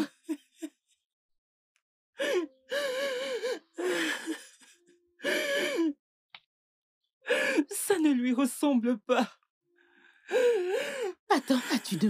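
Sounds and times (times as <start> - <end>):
woman wailing and sobbing: 0.0 - 0.7, 2.2 - 6.0.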